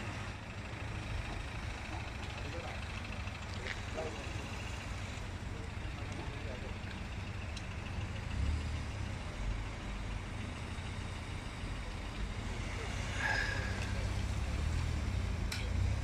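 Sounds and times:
car engines idling: 0:00.0 - 0:16.0.

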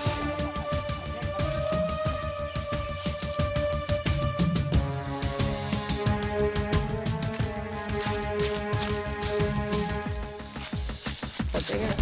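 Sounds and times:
fast drum beat: 0:08.6 - 0:12.0.

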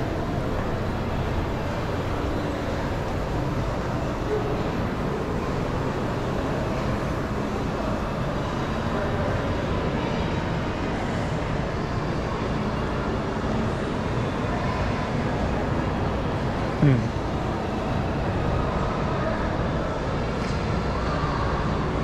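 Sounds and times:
shopping mall background hum: 0:00.0 - 0:22.0.

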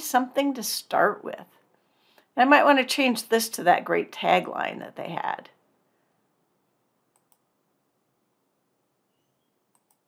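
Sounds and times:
computer mouse clicks: 0:07.1 - 0:07.5, 0:09.7 - 0:10.0.

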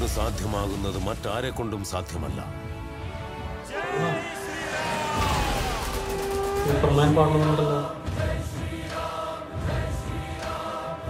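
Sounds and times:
film trailer score: 0:00.0 - 0:11.0.

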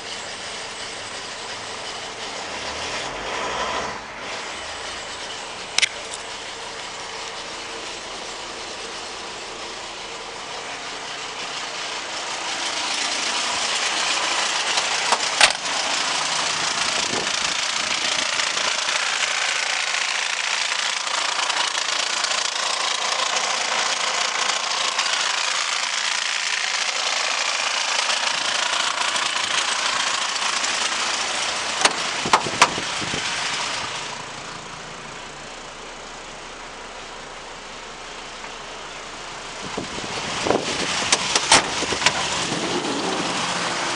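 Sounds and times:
diesel engine running: 0:00.0 - 0:43.9.

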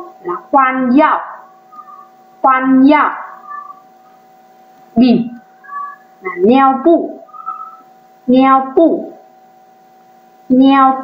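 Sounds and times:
faint steady tonal hum: 0:00.0 - 0:11.0.

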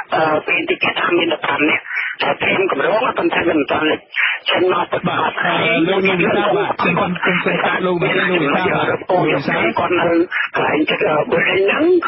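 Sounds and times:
muffled person talking: 0:00.0 - 0:12.0.

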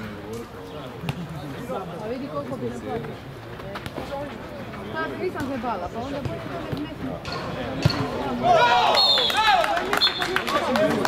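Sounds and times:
people shouting: 0:08.4 - 0:09.6.

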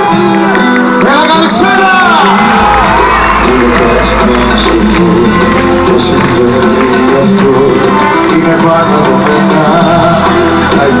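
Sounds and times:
live band music over speakers: 0:00.0 - 0:11.0
low bass: 0:02.3 - 0:11.0.

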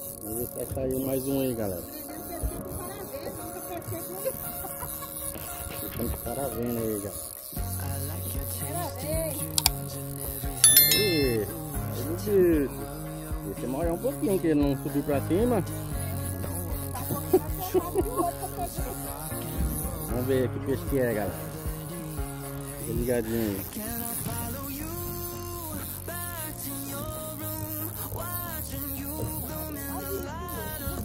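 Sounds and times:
background music with wavering melody: 0:00.1 - 0:25.2.

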